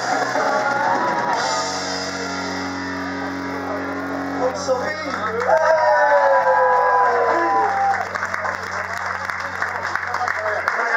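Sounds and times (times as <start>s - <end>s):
electric guitar chord ringing: 0.0s - 5.6s.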